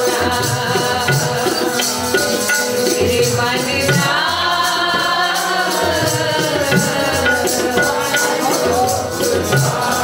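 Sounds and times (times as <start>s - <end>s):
harmonium: 0.0s - 10.0s
tabla strokes: 0.0s - 10.0s.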